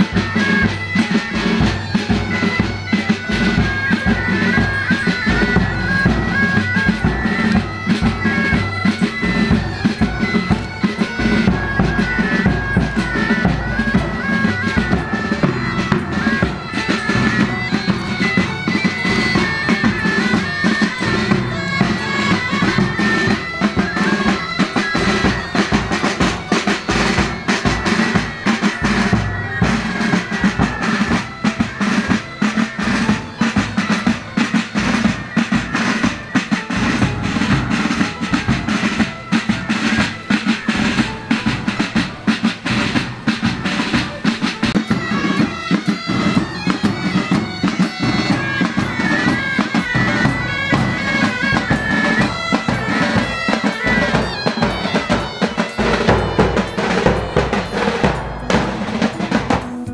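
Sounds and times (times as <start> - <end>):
bagpipes drone and melody: 0.0 - 59.9
side drums rattling: 0.0 - 59.9
bass drum beating: 49.9 - 59.9.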